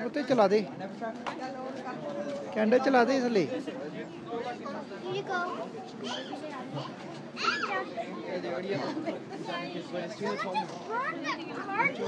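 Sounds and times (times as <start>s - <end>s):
children talking and calling out: 1.6s - 2.8s, 3.7s - 12.0s.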